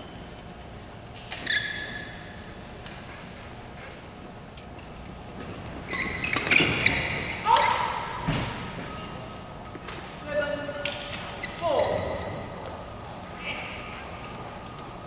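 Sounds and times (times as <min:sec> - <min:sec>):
shoes squeaking on court: 0:00.0 - 0:04.0, 0:04.8 - 0:12.9
voices and shouts echoing: 0:07.4 - 0:08.3, 0:11.6 - 0:13.9.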